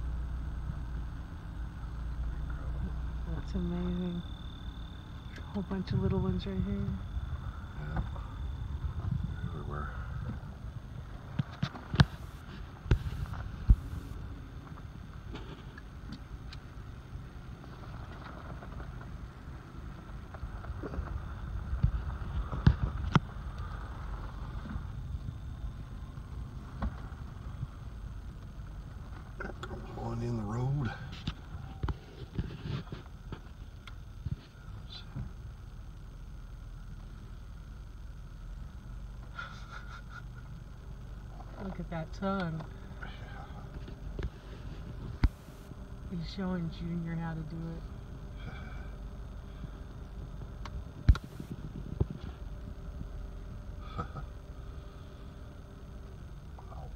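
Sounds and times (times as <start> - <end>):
car engine idling: 0.0 - 56.9.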